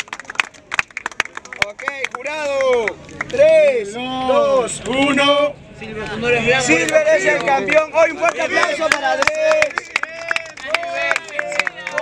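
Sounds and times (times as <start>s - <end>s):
scattered hand claps: 0.0s - 3.5s, 8.2s - 12.0s.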